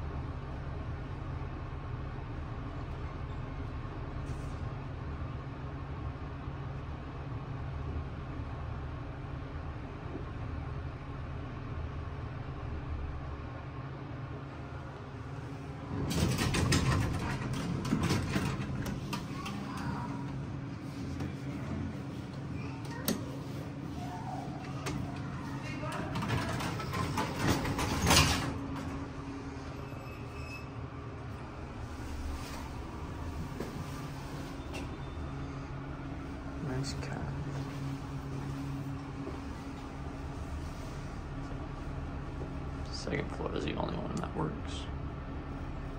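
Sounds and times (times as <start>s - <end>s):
elevator doors sliding: 14.5s - 44.2s.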